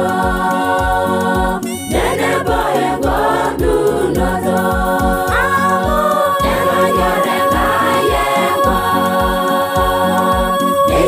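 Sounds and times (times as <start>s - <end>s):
large choir singing in harmony: 0.0s - 11.0s
steady low beat: 0.0s - 11.0s.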